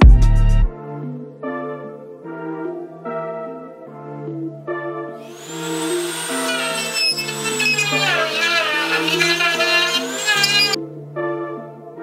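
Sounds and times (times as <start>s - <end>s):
background music: 0.0s - 12.0s
rotary tool grinding wood: 5.3s - 10.8s.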